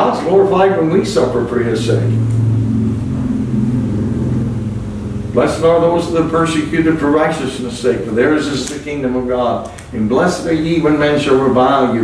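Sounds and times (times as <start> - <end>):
low engine-like hum: 0.0 - 12.0.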